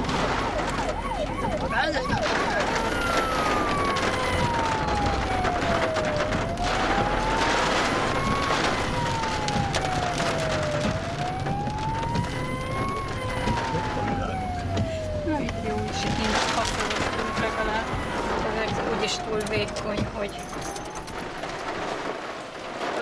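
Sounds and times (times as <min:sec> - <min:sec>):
emergency siren: 0:00.0 - 0:22.8
heavy rain on car: 0:00.0 - 0:23.0.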